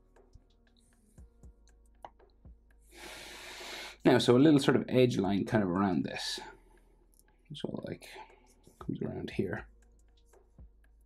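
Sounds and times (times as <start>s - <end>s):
person breathing in: 2.8s - 4.0s.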